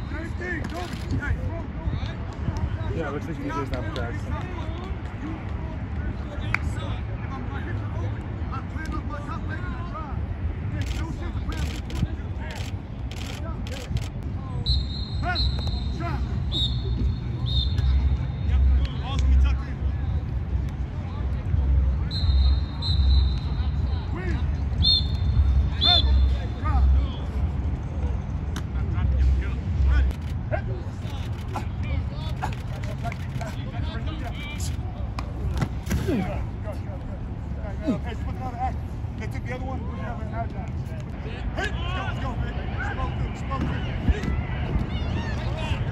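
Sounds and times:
high whistle bursts: 14.6s - 17.8s.

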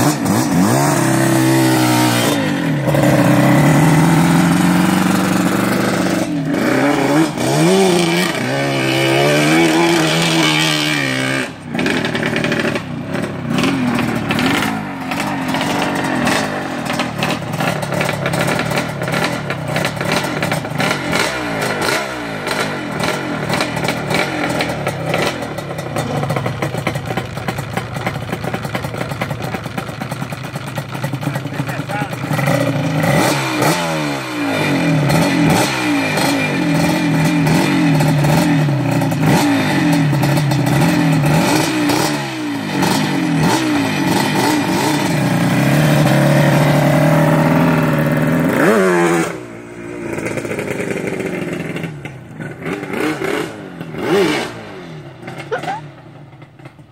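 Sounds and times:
two-stroke engine revving: 0.0s - 56.9s.

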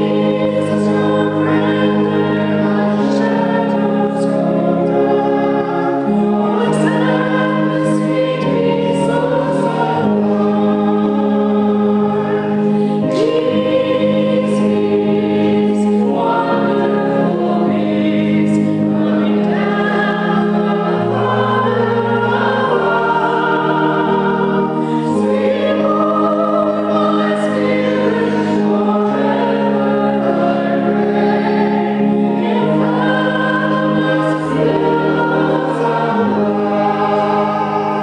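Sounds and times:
congregation singing a hymn: 0.0s - 38.0s
organ chords: 0.0s - 38.0s.

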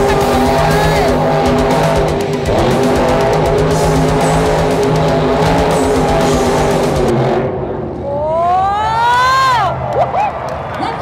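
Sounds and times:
buggy engine revving: 0.0s - 7.8s
loud rock music: 0.0s - 8.0s.

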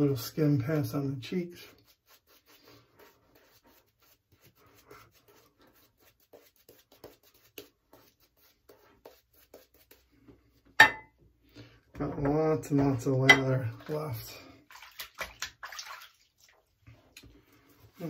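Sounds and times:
shaving brush rubbing on skin: 0.8s - 10.1s.

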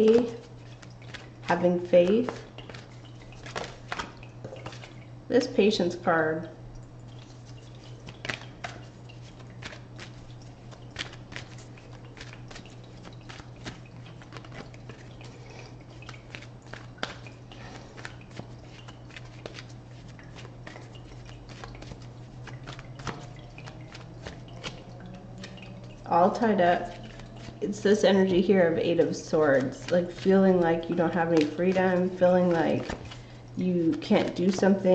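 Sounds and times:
low steady hum: 0.0s - 34.9s
cards being shuffled: 0.1s - 4.9s, 7.4s - 27.7s, 29.0s - 34.9s.

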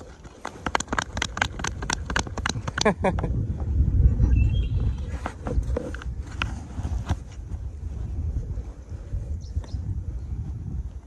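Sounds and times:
handling taps and clicks: 0.0s - 3.2s
wind buffeting microphone: 0.0s - 11.0s.

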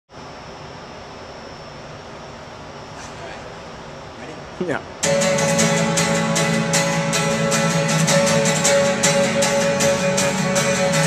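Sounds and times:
room noise hiss: 0.1s - 11.0s.

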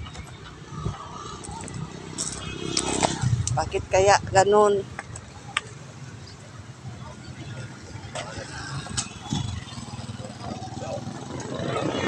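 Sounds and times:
low vehicle rumble: 0.0s - 12.0s
voices: 0.0s - 12.0s.

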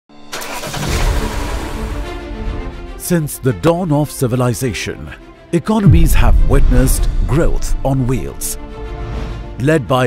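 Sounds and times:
car engine starting up: 0.2s - 2.4s.

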